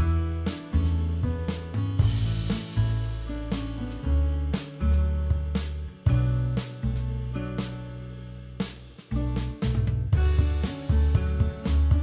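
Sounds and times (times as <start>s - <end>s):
guitar: 0.0s - 12.0s
sustained bass notes: 0.0s - 12.0s
steady beat: 8.7s - 12.0s.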